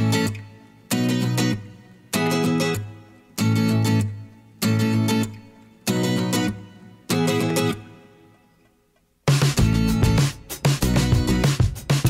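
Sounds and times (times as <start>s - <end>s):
strummed guitar chords: 0.0s - 12.0s.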